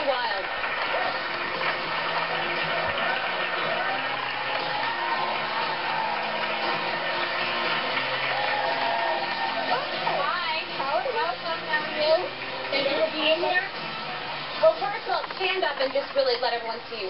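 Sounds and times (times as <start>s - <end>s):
audience applauding: 0.0s - 16.0s
walk-on music: 0.1s - 17.0s.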